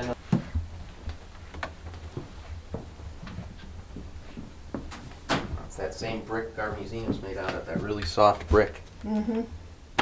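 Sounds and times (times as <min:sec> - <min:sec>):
footsteps on wooden floorboards: 0:00.2 - 0:05.8, 0:06.6 - 0:08.7.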